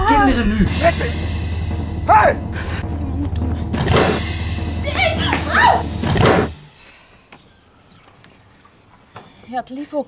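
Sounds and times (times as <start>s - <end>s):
faint high bird chirps: 6.9s - 8.7s.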